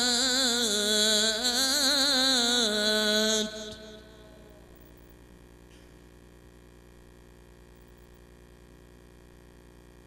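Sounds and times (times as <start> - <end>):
man reciting through loudspeaker: 0.0 - 4.9
faint hum: 0.0 - 10.0.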